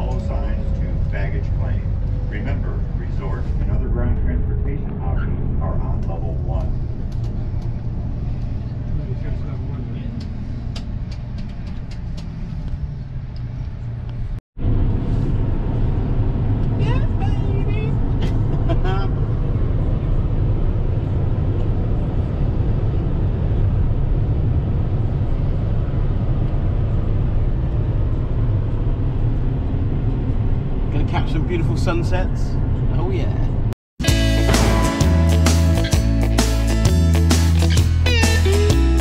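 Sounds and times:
people-mover ride: 0.0 - 13.9
car road and engine rumble: 0.0 - 39.0.

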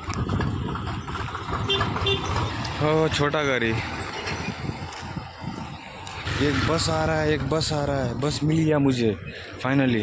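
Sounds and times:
tractor diesel engine chugging: 0.0 - 4.0.

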